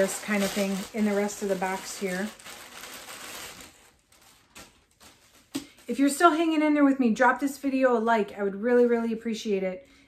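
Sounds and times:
plastic bag crinkling: 0:00.0 - 0:06.6.

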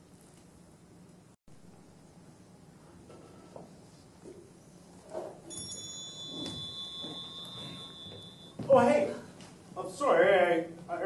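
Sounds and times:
high bell-like ring: 0:05.5 - 0:08.6.

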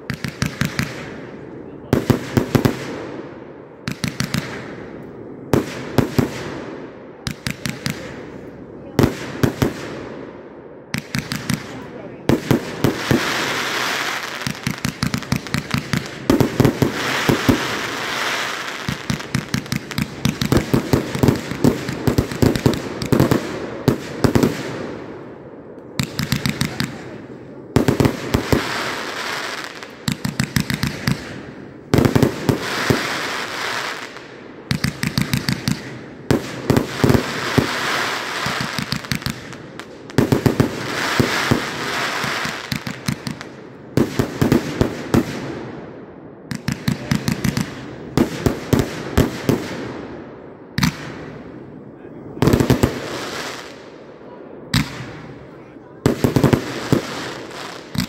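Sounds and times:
firework crackle: 0:00.0 - 0:03.0, 0:10.9 - 0:25.1, 0:25.9 - 0:45.6, 0:52.4 - 0:53.9, 0:54.8 - 0:58.0
firework shots: 0:00.0 - 0:58.0.

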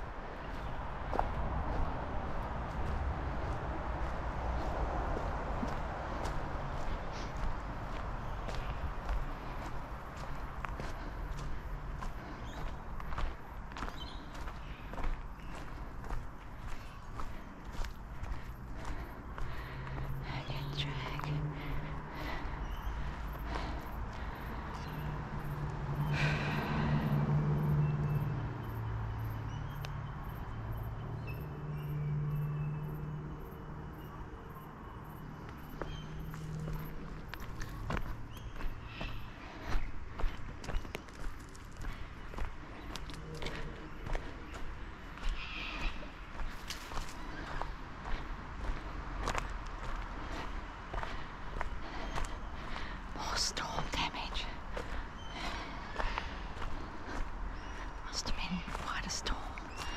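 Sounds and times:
crunching footsteps: 0:00.0 - 0:24.9, 0:35.4 - 0:59.9.

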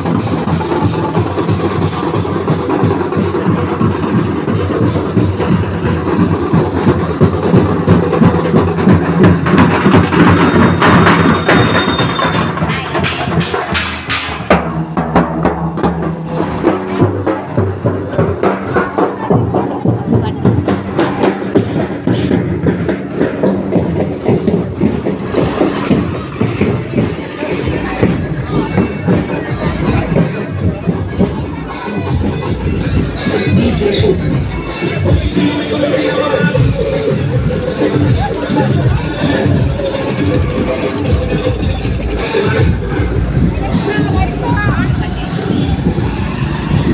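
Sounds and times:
crowd voices: 0:00.0 - 0:46.9
fast regular drum beat: 0:00.0 - 0:46.9
low rumble of vehicles: 0:21.6 - 0:46.9.

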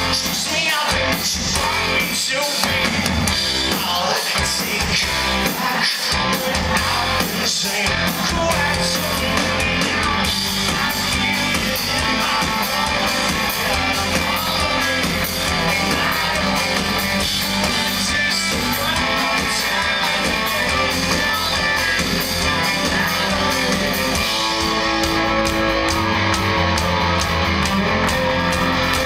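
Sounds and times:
live rock band playing: 0:00.0 - 0:29.0.

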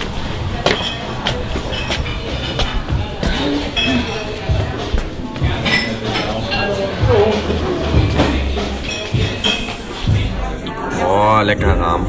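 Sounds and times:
footsteps on tiled floor: 0:00.0 - 0:10.6
background music: 0:00.0 - 0:12.0.

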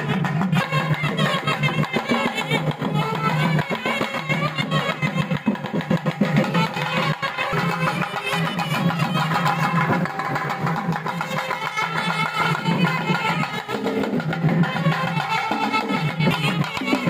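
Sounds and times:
nadaswaram melody: 0:00.0 - 0:17.0.

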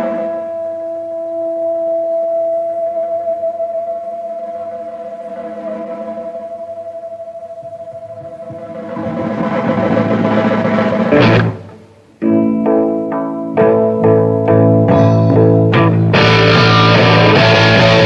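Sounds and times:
electric guitar with vibrato: 0:00.0 - 0:18.0.

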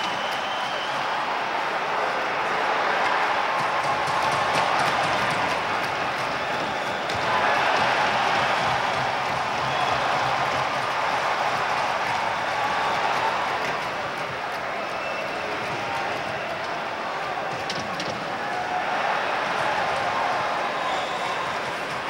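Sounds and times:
arena crowd cheering: 0:00.0 - 0:22.0.

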